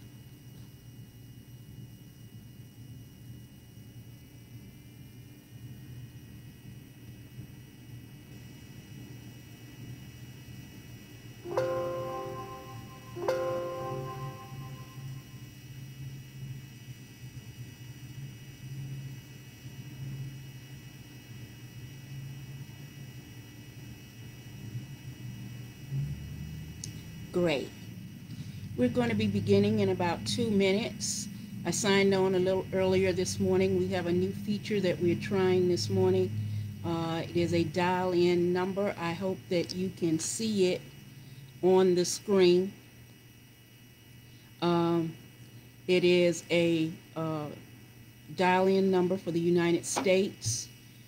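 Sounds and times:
ringing chime notes: 11.5 - 15.3
low hum: 11.5 - 15.4, 26.8 - 38.5.

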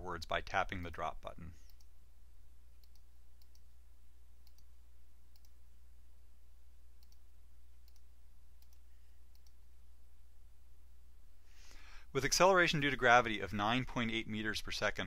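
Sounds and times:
computer mouse clicks: 2.8 - 3.7, 4.4 - 4.7, 5.3 - 5.6, 7.0 - 9.6.

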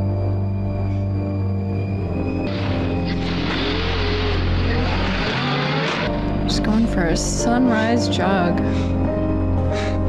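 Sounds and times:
soft music: 0.0 - 10.0.

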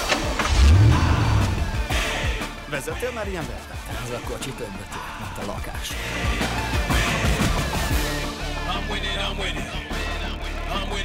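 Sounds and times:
car engine revving: 0.0 - 2.0
background music: 0.0 - 11.0.

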